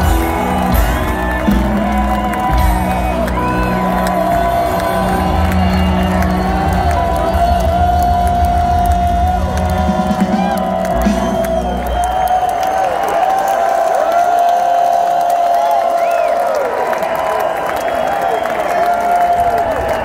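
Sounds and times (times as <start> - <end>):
live rock band playing loudly: 0.0 - 12.3
audience whooping and cheering: 0.0 - 20.0.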